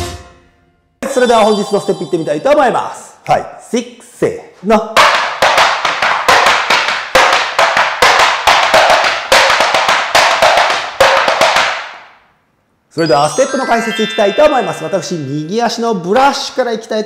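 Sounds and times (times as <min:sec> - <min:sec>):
tap shoes clicking on wooden board: 0:05.0 - 0:11.9.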